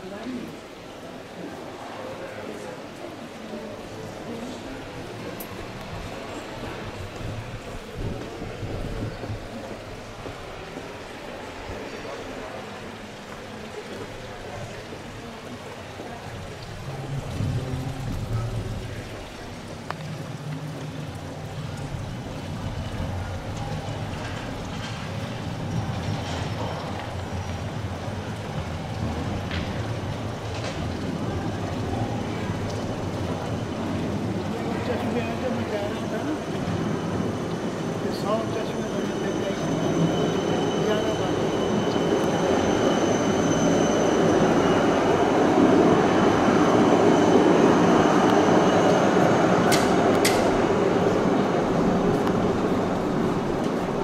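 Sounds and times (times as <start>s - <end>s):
indistinct voices of passers-by: 0.0s - 54.0s
low rumble of traffic: 1.8s - 54.0s.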